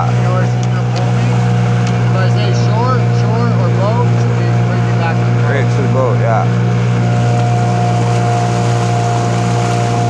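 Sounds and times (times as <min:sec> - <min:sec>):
motorboat engine humming: 0:00.0 - 0:10.0.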